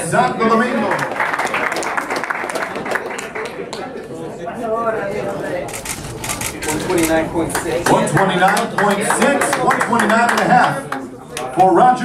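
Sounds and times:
people talking indistinctly: 3.0 - 12.0.

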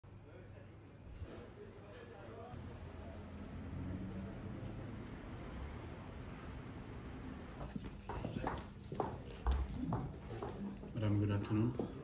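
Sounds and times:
footsteps on stone floor: 7.6 - 11.0.

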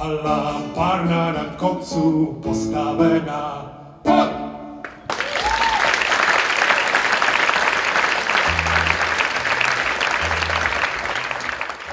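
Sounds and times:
audience applauding: 4.8 - 11.9.

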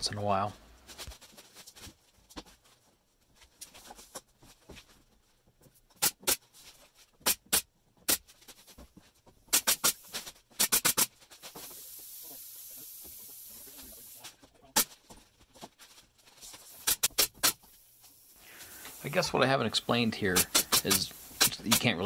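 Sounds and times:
pneumatic nailer shots: 6.0 - 6.5, 7.2 - 8.3, 9.5 - 14.2, 16.7 - 18.2, 20.3 - 22.0
compressed air hissing: 9.5 - 14.4, 16.6 - 22.0.

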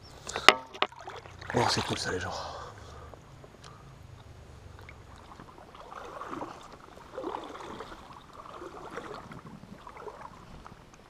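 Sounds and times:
water sloshing and gurgling: 0.1 - 11.0.

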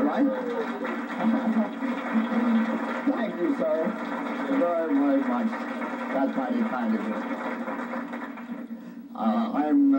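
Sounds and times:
audience crowd noise: 0.0 - 8.7.

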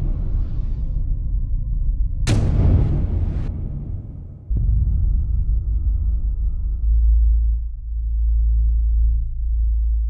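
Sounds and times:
deep bass drone: 0.0 - 10.0.

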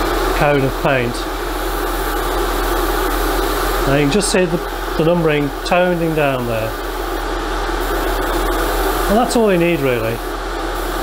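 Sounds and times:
airbrush air hiss: 0.0 - 11.0
steady low hum: 0.0 - 11.0.

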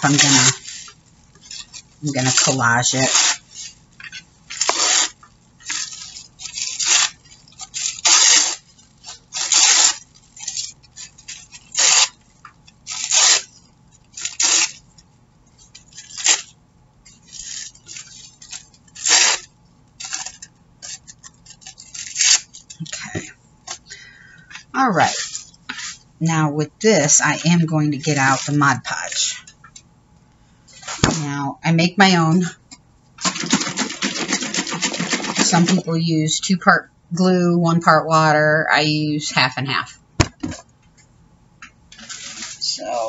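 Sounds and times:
tissue paper tearing: 0.0 - 12.2, 12.8 - 14.8, 15.6 - 16.5, 17.1 - 23.9, 24.8 - 26.0, 27.0 - 29.4, 30.8 - 31.2, 33.2 - 35.9, 41.9 - 43.0.

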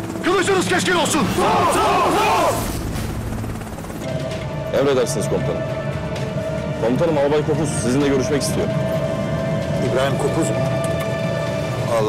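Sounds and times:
soldiers shouting in unison: 1.3 - 2.6.

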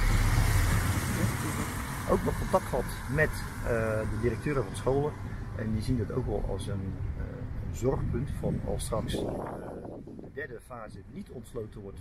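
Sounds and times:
tyres on wet road: 0.0 - 9.9
car engine: 0.0 - 10.2.

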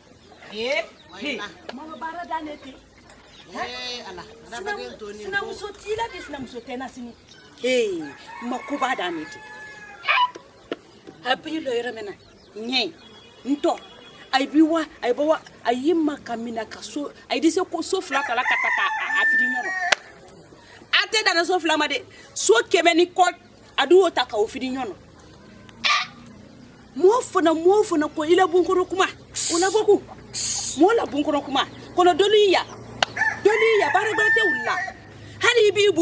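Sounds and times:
rooster crowing: 8.0 - 10.4, 18.0 - 20.2, 33.0 - 35.2
woman speaking: 27.0 - 32.8, 33.4 - 36.0
short breathy hiss: 29.4 - 30.8.

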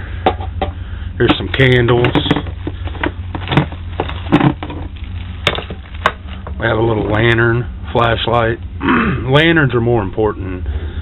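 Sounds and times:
steady low hum: 0.0 - 11.0
items clattering in plastic tote: 1.2 - 7.4.

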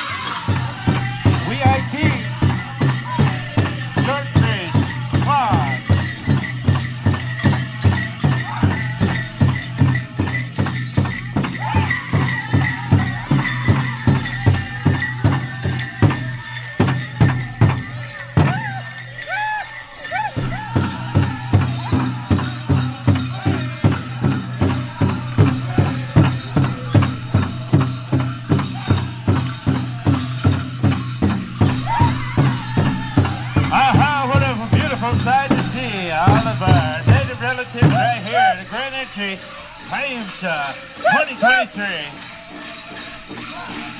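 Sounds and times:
steady drumbeat: 0.0 - 42.6
bells jingling and rattling: 0.0 - 43.9
people singing: 0.0 - 43.9.

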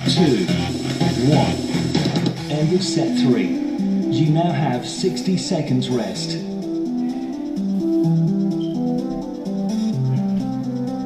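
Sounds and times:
background guitar music: 0.0 - 11.0.

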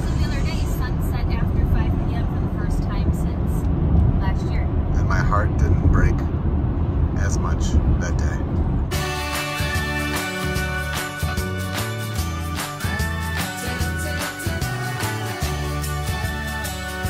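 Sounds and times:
car road rumble from inside: 0.0 - 8.9.

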